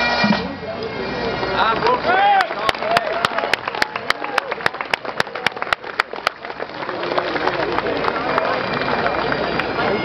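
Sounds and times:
pipe band drums beating: 0.0s - 2.1s
crowd voices: 0.0s - 10.0s
people clapping: 1.8s - 10.0s.

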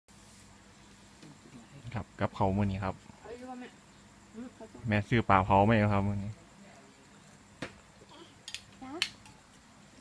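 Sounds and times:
faint low hum: 0.1s - 10.0s
man speaking: 1.6s - 3.0s, 4.8s - 6.4s.

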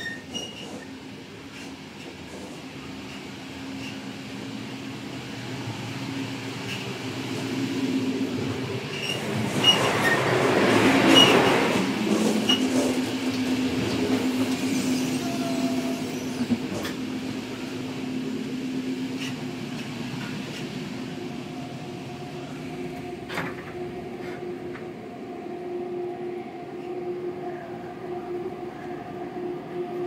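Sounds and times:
train running rumble: 0.0s - 30.0s.

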